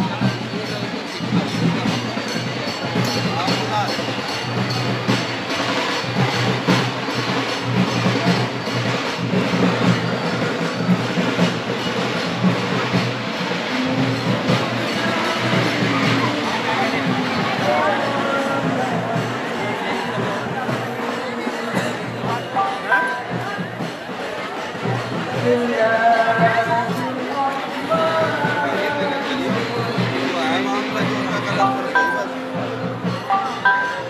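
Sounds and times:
crowd din: 0.0s - 34.0s
loud music: 11.7s - 23.6s.

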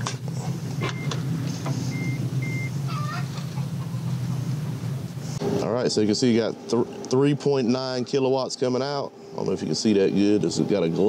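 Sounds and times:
steady low hum: 0.0s - 11.0s
short high beeps: 1.9s - 2.7s.

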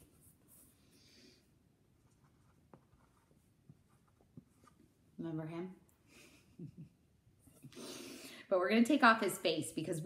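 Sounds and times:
marker scratching on whiteboard: 2.0s - 4.8s.

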